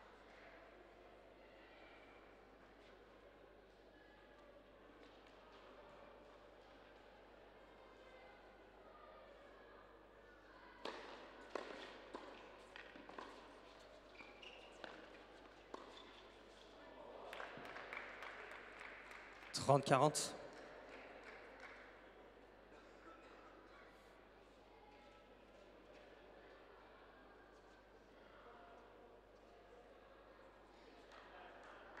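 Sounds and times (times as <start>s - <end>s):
applause: 17.0s - 23.4s, 31.0s - 32.0s.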